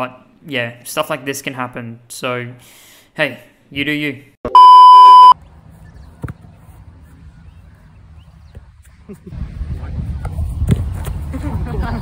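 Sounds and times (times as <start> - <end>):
wind rumble on microphone: 7.9 - 12.0.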